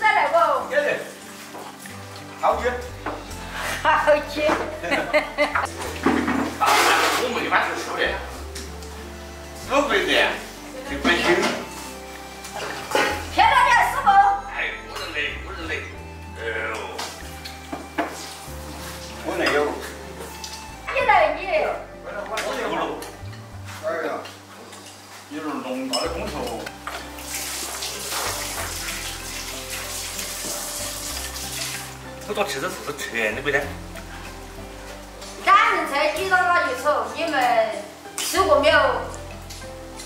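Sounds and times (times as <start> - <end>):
background music: 0.0 - 40.0
running water: 0.0 - 40.0
people talking and exclaiming: 13.2 - 14.8.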